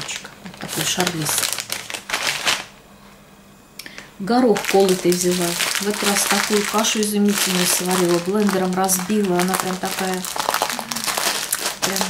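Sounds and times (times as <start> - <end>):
packaging rustling and crinkling: 0.0 - 2.7, 4.0 - 12.0.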